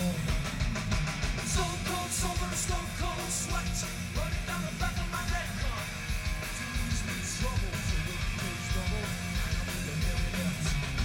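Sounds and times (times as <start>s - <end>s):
drum and cymbal hits: 0.0s - 11.0s
hard rock band playing: 0.0s - 11.0s.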